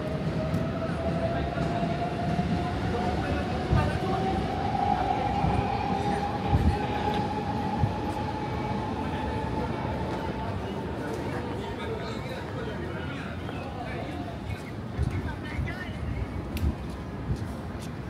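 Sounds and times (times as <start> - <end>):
electric train rumbling: 0.0 - 12.9.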